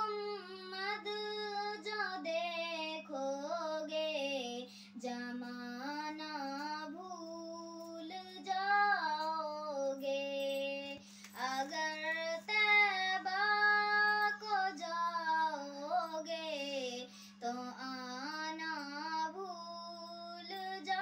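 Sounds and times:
girl singing unaccompanied: 0.0 - 21.0
steady low hum: 0.0 - 21.0.

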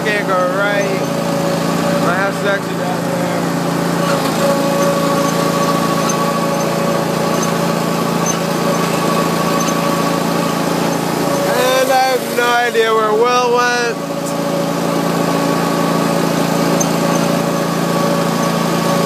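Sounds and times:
mower engine running: 0.0 - 19.0.

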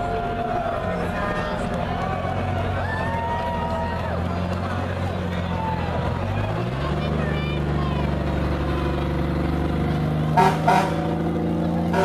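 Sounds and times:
old vehicle engines running: 0.0 - 12.0
vehicle horn toots: 10.4 - 11.1.

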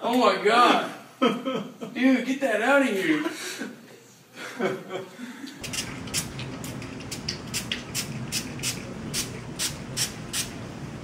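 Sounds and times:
low room hum: 4.2 - 11.0
spray bottle spritzes: 5.6 - 10.6.

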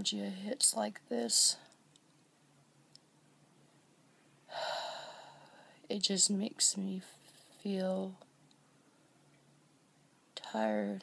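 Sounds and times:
woman speaking: 0.0 - 1.7, 5.9 - 8.2, 10.4 - 11.0
woman breathing heavily: 4.5 - 5.8.

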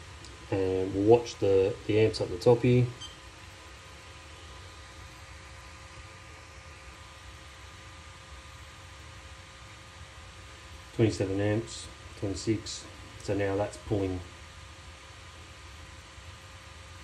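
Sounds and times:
cooling fan running: 0.0 - 17.0.

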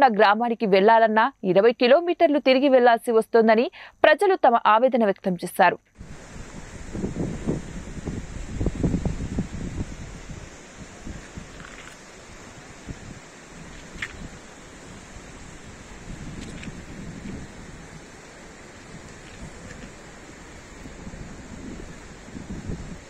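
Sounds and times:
river rushing: 6.0 - 23.0
wind buffeting microphone: 6.0 - 23.0.

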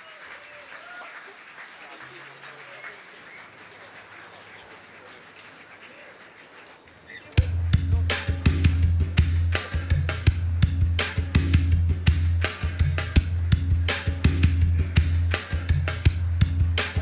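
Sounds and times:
murmur of voices: 0.0 - 8.7, 9.4 - 10.2
band music with drum kit: 7.4 - 17.0.

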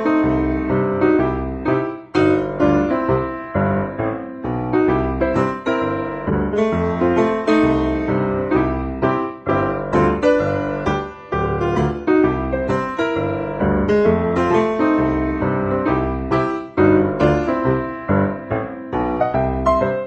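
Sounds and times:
piano music: 0.0 - 20.0.

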